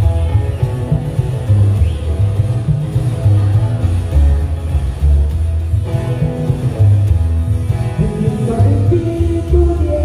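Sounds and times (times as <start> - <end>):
acoustic guitars: 0.0 - 10.0
upright double bass: 0.0 - 10.0.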